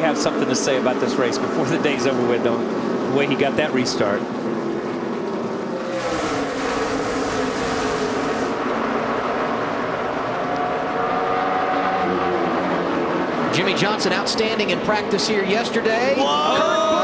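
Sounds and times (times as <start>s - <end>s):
race car engines droning: 0.0s - 17.0s
rushing hiss: 5.8s - 8.6s.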